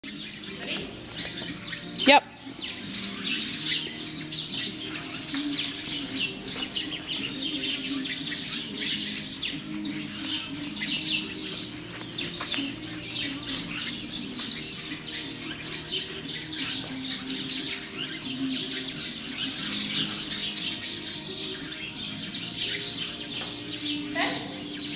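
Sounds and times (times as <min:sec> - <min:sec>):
small birds chirping: 0:00.0 - 0:24.9.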